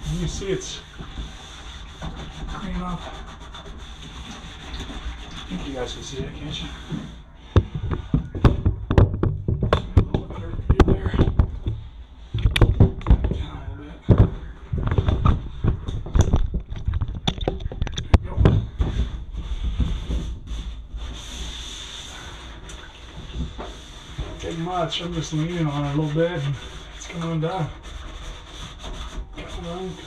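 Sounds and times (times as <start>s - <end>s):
scouring pad scrubbing plastic: 0.0s - 7.2s, 20.1s - 30.0s
knocks and thumps: 6.9s - 20.4s.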